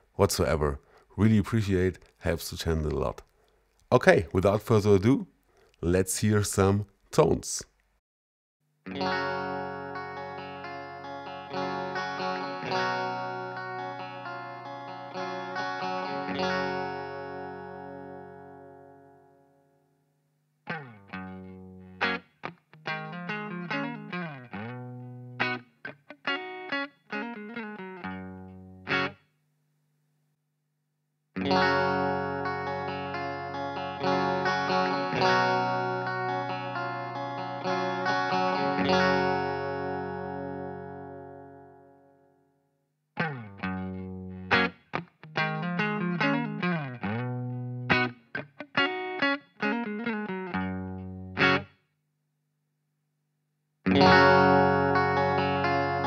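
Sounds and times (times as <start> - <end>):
electric guitar chords and picked notes: 8.9 - 19.6, 20.7 - 29.2, 31.4 - 42.3, 43.2 - 51.8, 53.8 - 56.0.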